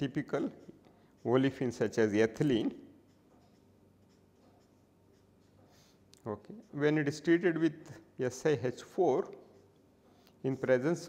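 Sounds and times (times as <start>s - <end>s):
marker scratching on paper: 0.0s - 6.0s.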